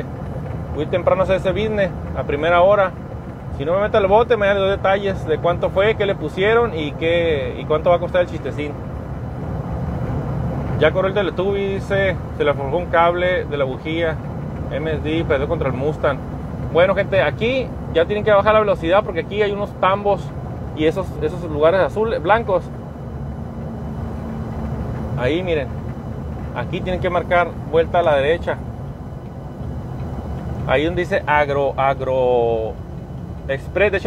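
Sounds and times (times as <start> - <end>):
road and engine rumble in car: 0.0 - 34.0.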